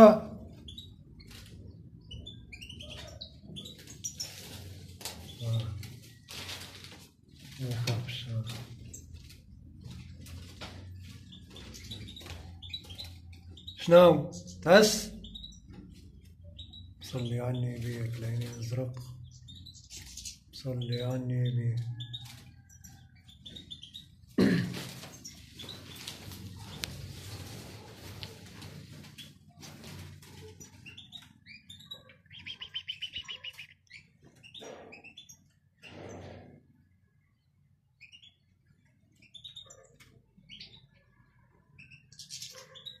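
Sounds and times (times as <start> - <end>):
canary chirps: 0.0 - 43.0.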